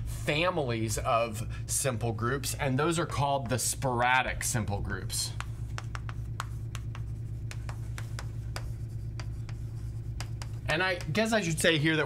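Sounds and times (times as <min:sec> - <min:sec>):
steady low hum: 0:00.0 - 0:12.0
chalk tapping and scratching: 0:05.3 - 0:11.7.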